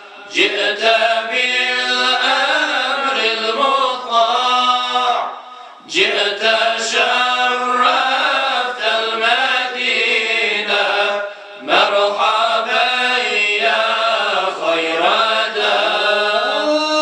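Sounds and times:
men singing unaccompanied hymn: 0:00.0 - 0:17.0.

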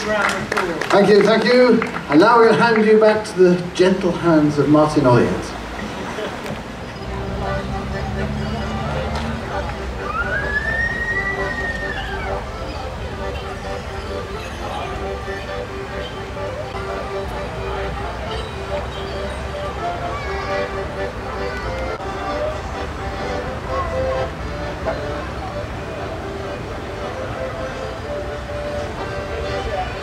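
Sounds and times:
distant crowd chatter: 0:00.0 - 0:30.0
high siren-like tone: 0:10.0 - 0:12.3.

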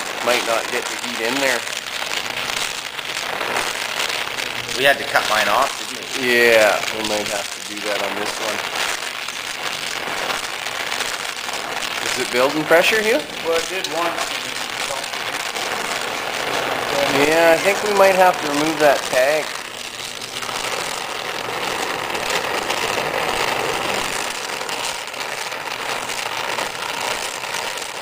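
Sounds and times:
welding torch flame hissing: 0:00.0 - 0:28.0.

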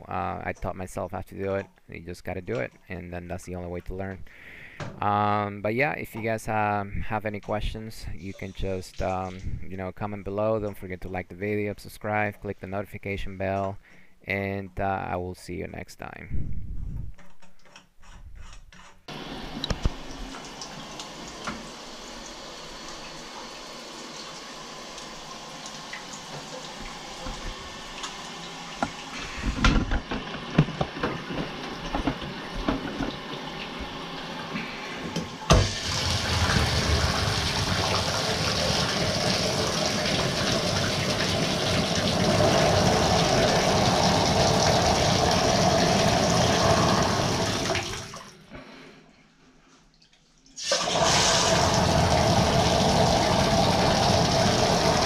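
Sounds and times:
water running into bathtub: 0:19.1 - 0:48.4, 0:50.4 - 0:55.0.

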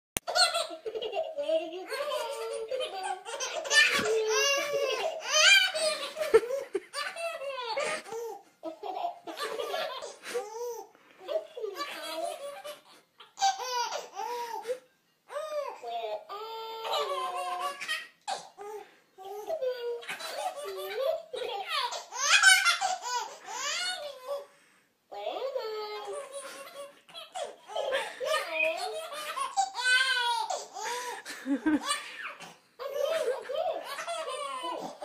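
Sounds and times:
baby laughing: 0:00.3 - 0:24.5, 0:25.2 - 0:35.0.

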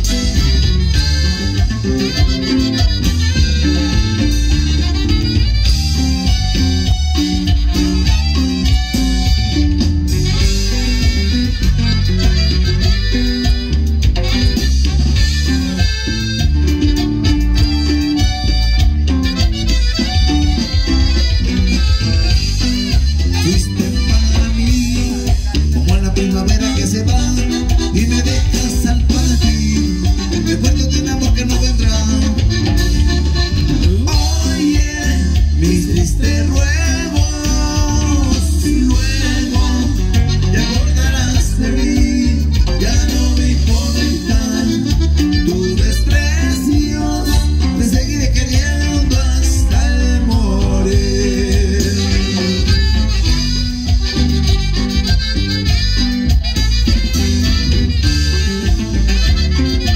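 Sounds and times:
live band playing cumbia: 0:00.0 - 0:59.9.

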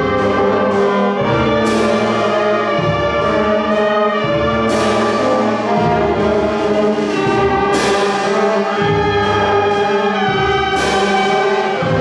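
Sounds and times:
concert band playing sustained chords: 0:00.0 - 0:12.0.

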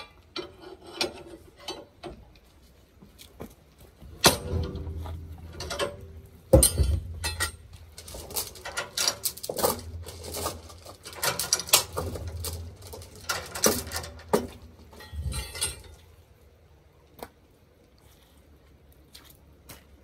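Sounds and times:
chain and binder clanking: 0:04.2 - 0:16.1.

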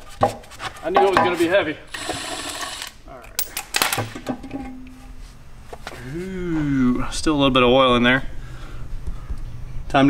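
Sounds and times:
electric ratchet running: 0:01.9 - 0:03.0.

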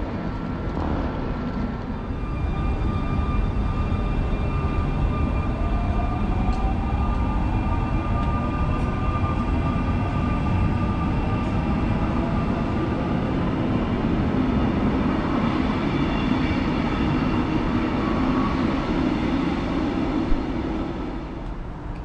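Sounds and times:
high steady whine: 0:00.0 - 0:22.0
train wheels rumbling on rail: 0:00.0 - 0:22.0.

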